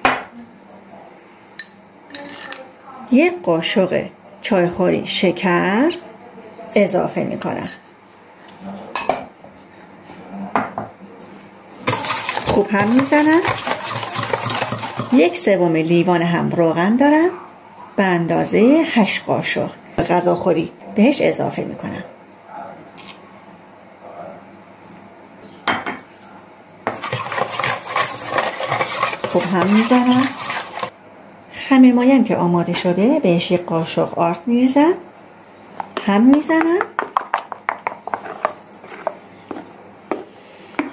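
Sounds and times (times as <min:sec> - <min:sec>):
spoon beating an egg: 0:11.8 - 0:15.4, 0:26.9 - 0:30.9, 0:37.0 - 0:40.2.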